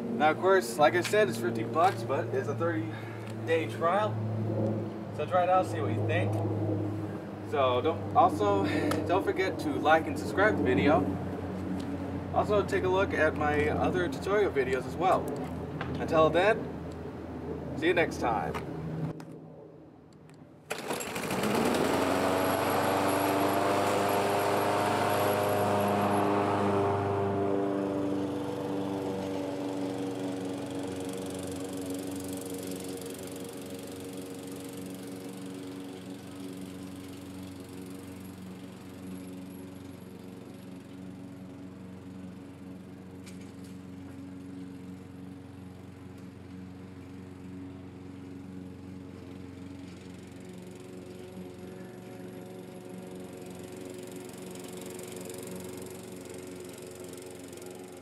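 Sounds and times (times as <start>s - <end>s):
small motor droning: 20.7s - 58.0s.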